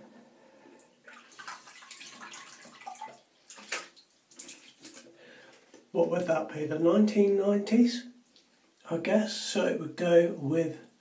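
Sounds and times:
water splashing in a basin: 1.0 - 5.2.

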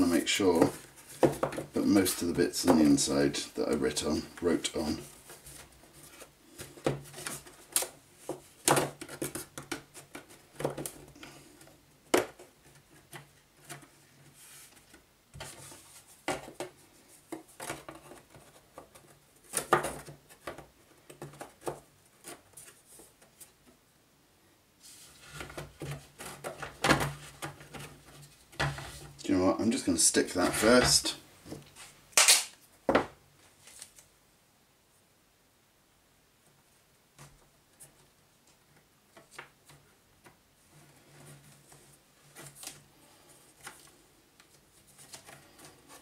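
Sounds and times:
wooden panels clicking and knocking: 0.5 - 4.1.

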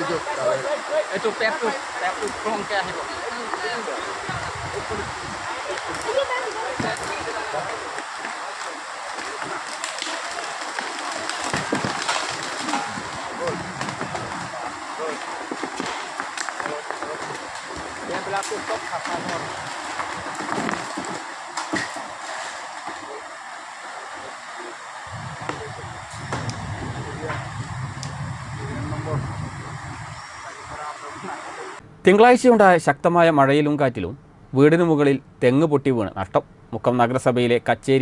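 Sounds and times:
faint voices: 0.0 - 31.8
river rushing: 0.0 - 31.8
low rumble: 25.0 - 31.2.

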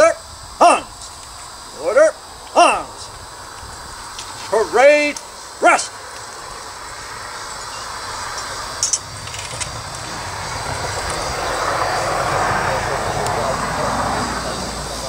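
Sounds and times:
aircraft engine rushing: 0.0 - 15.0.

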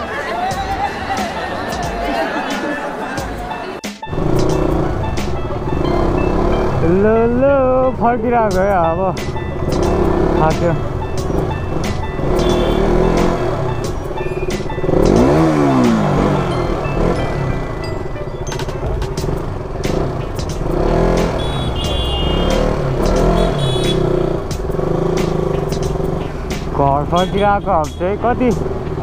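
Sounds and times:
crowd voices: 0.0 - 4.1
motorcycle and vehicle engines: 0.0 - 29.0
music: 0.0 - 29.0.

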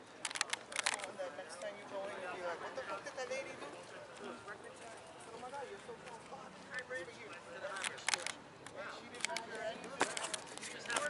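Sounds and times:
faint voices talking: 0.0 - 11.0
sharp clicks: 0.2 - 1.1, 7.7 - 11.0.

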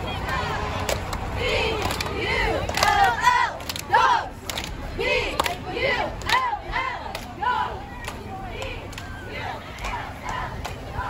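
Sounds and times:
cheerleaders shouting a cheer: 0.0 - 11.0.

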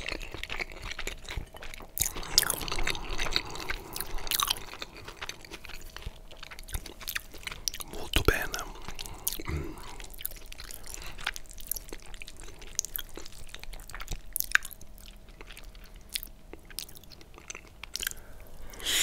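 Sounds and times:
wet chewing and slurping: 0.0 - 19.0.

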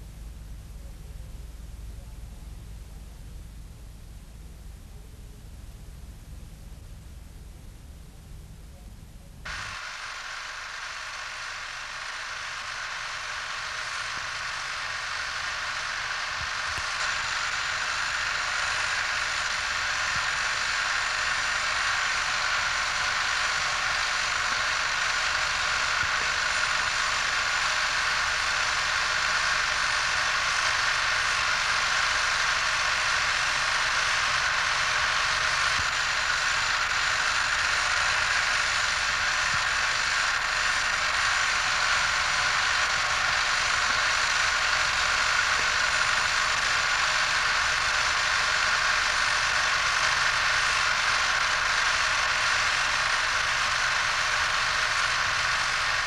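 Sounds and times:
steady hiss: 9.5 - 56.0.

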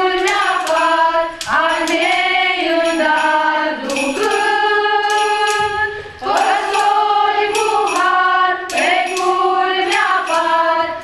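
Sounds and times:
women singing in unison: 0.0 - 11.0.

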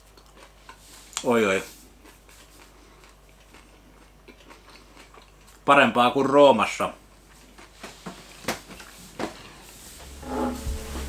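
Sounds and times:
faint chewing: 0.0 - 5.8, 7.1 - 9.8
low steady hum: 9.8 - 11.0.

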